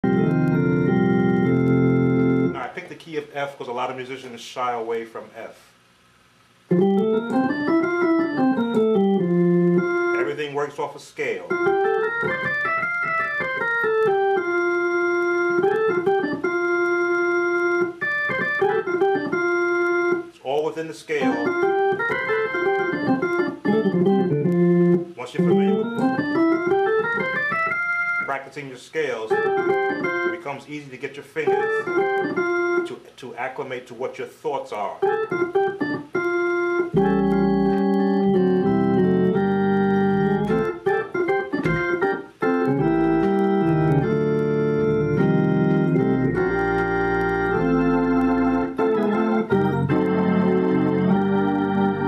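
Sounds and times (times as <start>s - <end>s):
organ playing sustained chords: 0.0s - 2.7s, 6.7s - 30.8s, 31.4s - 33.0s, 35.0s - 52.0s.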